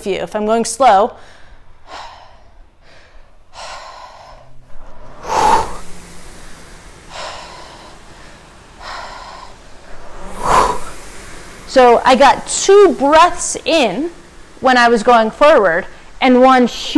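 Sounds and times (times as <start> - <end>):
person breathing heavily: 1.2 - 13.2.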